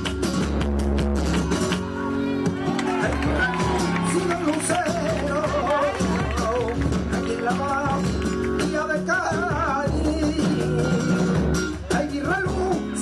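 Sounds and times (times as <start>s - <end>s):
guitar accompaniment: 0.0s - 13.0s
person singing flamenco: 0.0s - 13.0s.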